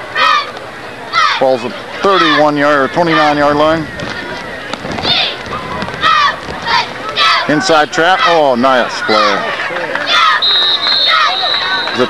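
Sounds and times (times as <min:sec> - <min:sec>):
crowd noise: 0:00.0 - 0:12.0
referee's whistle blast: 0:10.3 - 0:12.0.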